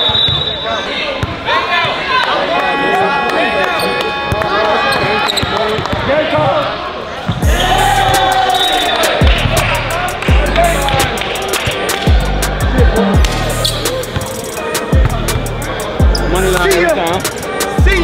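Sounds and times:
crowd voices: 0.0s - 18.0s
music with deep bass hits: 9.2s - 11.4s, 12.1s - 18.0s.

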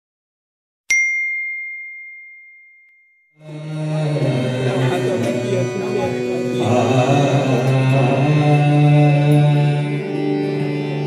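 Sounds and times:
notification ding: 0.9s - 3.3s
devotional music: 3.4s - 11.0s.

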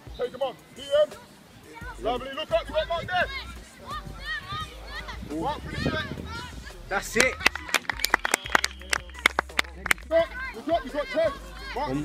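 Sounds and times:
faint voices: 0.0s - 12.0s
hand clapping: 7.1s - 10.1s.

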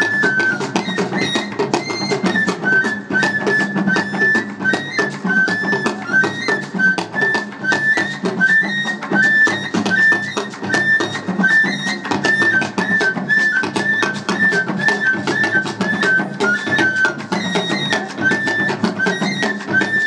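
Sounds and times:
high flute phrase: 0.0s - 20.0s
rapid hand drum strokes: 0.0s - 20.0s.

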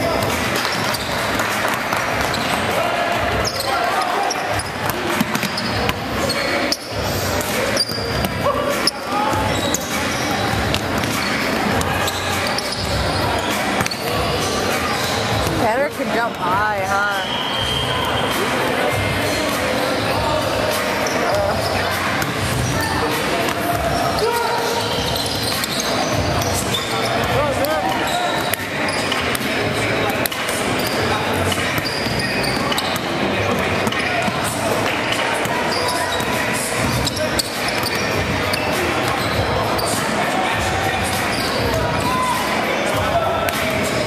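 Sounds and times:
basketballs bouncing on wooden floor: 0.0s - 16.9s
chatter of voices: 0.0s - 44.0s.

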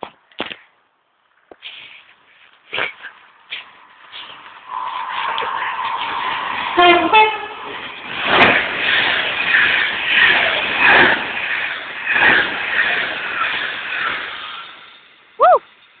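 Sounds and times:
train passing at speed: 3.2s - 16.0s.

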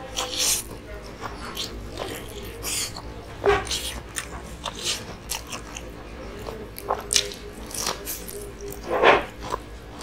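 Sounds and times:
crunchy chewing and biting: 0.0s - 10.0s.

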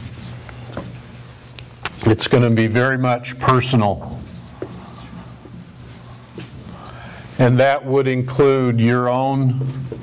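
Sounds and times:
low room hum: 0.0s - 10.0s
marker writing on a whiteboard: 3.3s - 6.8s.

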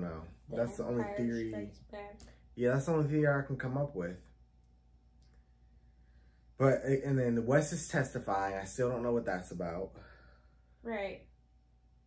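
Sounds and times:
man speaking: 0.0s - 1.8s, 2.6s - 4.2s, 6.6s - 10.1s
faint steady hum: 0.0s - 12.0s.

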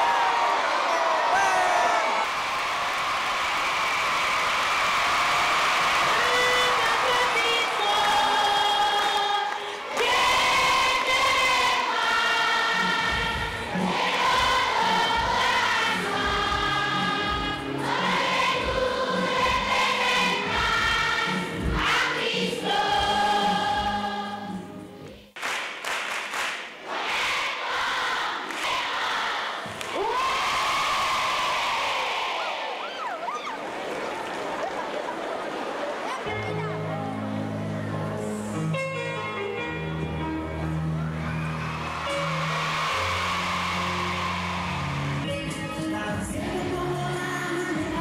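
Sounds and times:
crowd noise: 0.0s - 25.0s, 26.7s - 48.0s
children's choir singing: 5.9s - 25.2s, 26.8s - 30.2s, 42.0s - 48.0s.

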